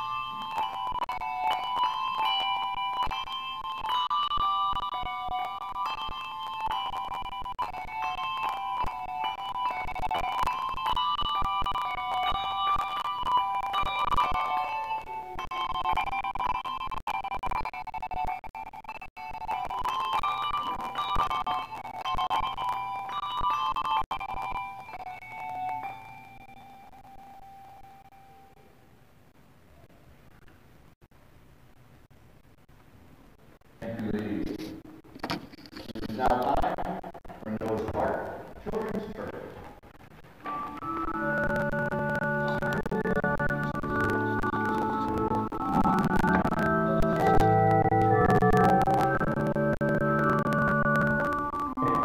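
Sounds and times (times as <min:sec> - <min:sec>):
handbells ringing melody: 0:00.0 - 0:16.8, 0:19.2 - 0:28.5.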